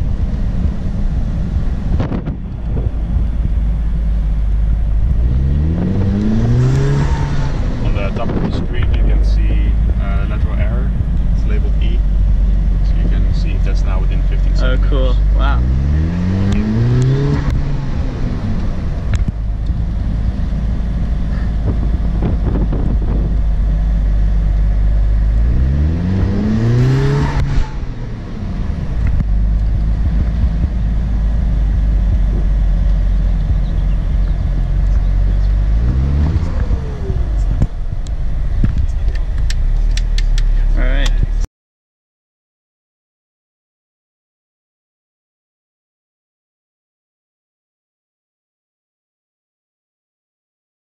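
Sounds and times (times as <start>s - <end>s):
car engine accelerating: 0.0s - 41.5s
wind and road noise: 0.0s - 41.5s.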